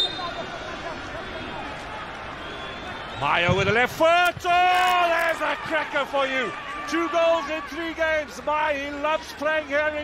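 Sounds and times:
stadium crowd murmur: 0:00.0 - 0:10.0.

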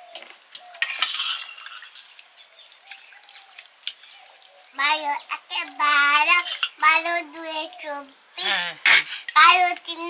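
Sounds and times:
girl singing in a high voice: 0:04.7 - 0:08.5, 0:09.2 - 0:10.0.

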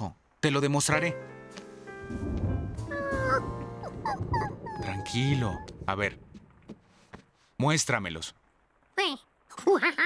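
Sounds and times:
soft background music: 0:00.4 - 0:06.2
cartoon monkey whimpering: 0:02.9 - 0:05.7.

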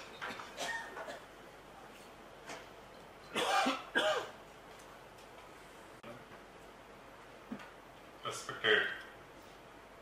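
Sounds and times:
man coughing: 0:00.6 - 0:01.2, 0:03.4 - 0:04.4
man clearing his throat: 0:03.4 - 0:04.4.

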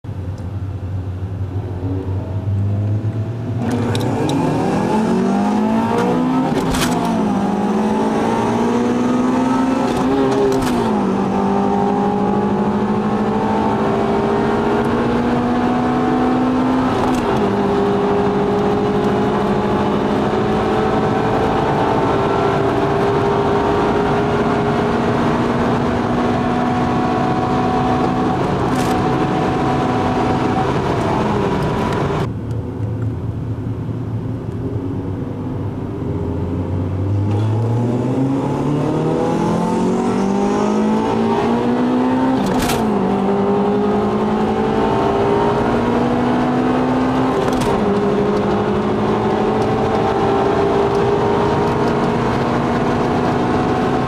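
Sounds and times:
road noise: 0:00.0 - 0:54.0
car engine accelerating: 0:00.2 - 0:32.3, 0:34.5 - 0:54.0.

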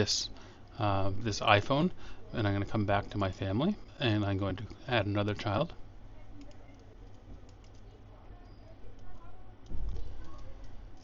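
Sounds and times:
low steady hum: 0:00.0 - 0:11.0
computer mouse clicks: 0:06.4 - 0:08.0, 0:08.9 - 0:11.0.

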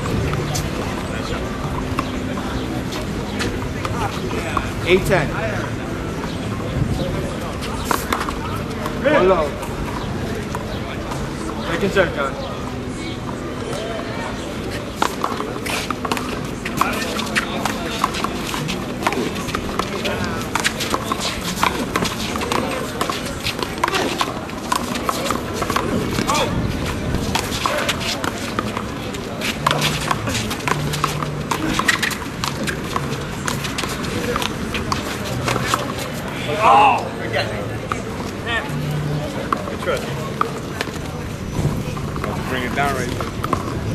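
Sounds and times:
people talking: 0:00.0 - 0:43.9.

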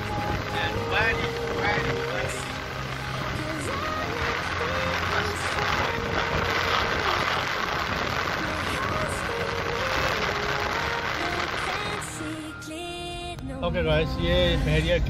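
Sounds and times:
song with singing voice: 0:00.0 - 0:14.7
car road and wind noise: 0:00.0 - 0:15.0.

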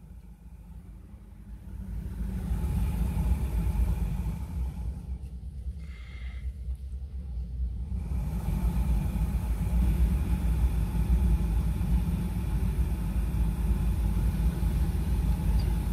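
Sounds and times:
car engine low rumble: 0:00.0 - 0:15.9
steady whirr: 0:00.0 - 0:15.9.

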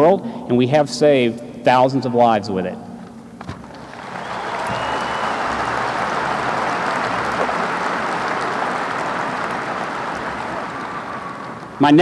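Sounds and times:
audience applauding: 0:03.6 - 0:12.0.

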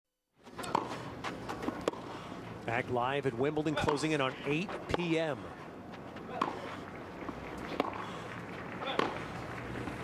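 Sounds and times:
racquet hitting tennis ball: 0:00.6 - 0:01.0, 0:01.6 - 0:02.1, 0:06.3 - 0:06.6, 0:07.7 - 0:08.1, 0:08.8 - 0:09.3.

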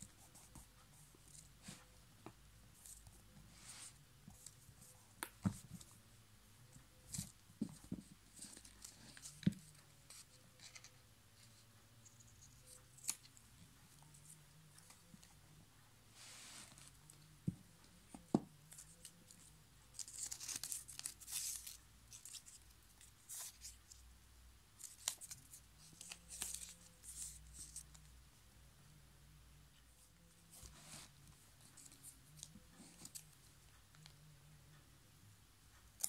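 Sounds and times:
paper rustling: 0:18.0 - 0:22.6
paper strip rustling and crinkling: 0:18.0 - 0:24.0, 0:24.8 - 0:28.1.

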